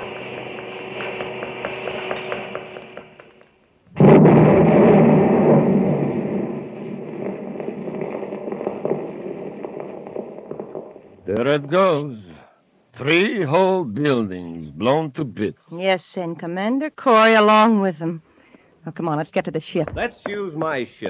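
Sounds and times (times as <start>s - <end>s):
loud rumbling explosion: 3.9s - 11.3s.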